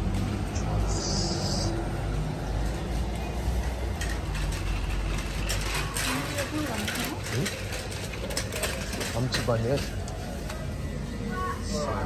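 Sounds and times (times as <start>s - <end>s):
trolley wheels rattling: 0.0s - 12.0s.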